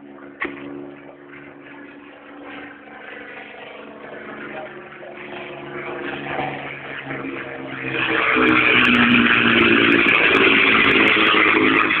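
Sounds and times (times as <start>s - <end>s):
propeller plane engine flying past: 0.0s - 12.0s.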